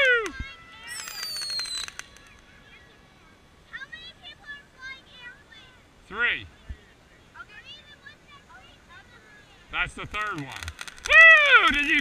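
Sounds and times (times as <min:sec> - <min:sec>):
firework crackling and popping: 0:00.0 - 0:05.7, 0:07.8 - 0:12.0
high falling whistle: 0:00.8 - 0:02.2.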